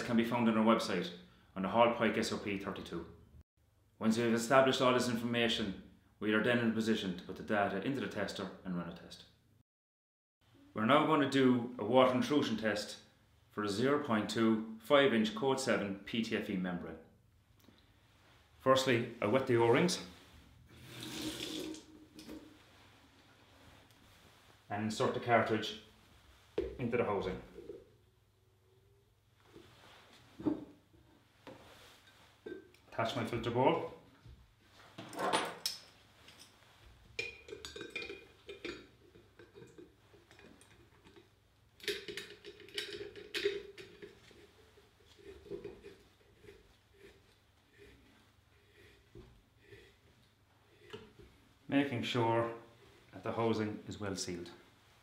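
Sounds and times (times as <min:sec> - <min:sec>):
sink tap running: 0:20.8 - 0:22.4
metal parts clinking and knocking: 0:41.8 - 0:44.1.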